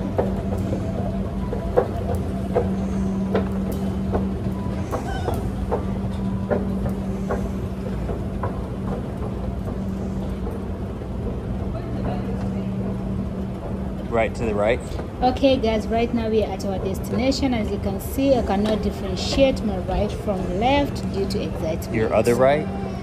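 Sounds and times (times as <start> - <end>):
escalator machine hum: 0.0 - 23.0.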